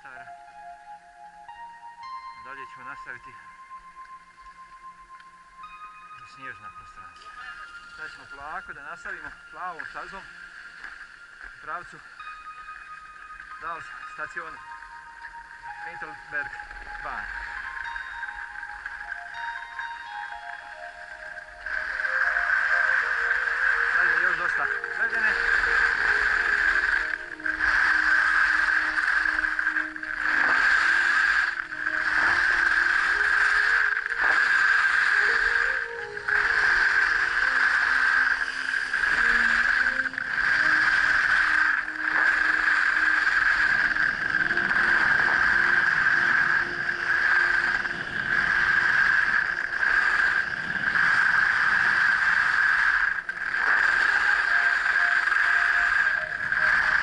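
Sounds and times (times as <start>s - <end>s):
skis scraping over hard snow: 21.7s - 57.0s.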